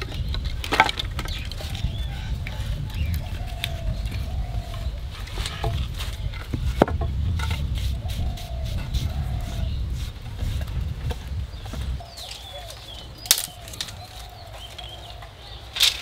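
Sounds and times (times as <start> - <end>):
firewood knocking and scraping: 0.0 - 16.0
faint bird calls: 1.2 - 6.4, 7.8 - 10.2, 11.5 - 16.0.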